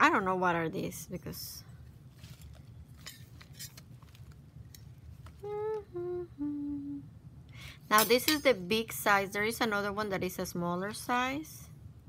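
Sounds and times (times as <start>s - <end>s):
woman humming: 5.4s - 7.2s.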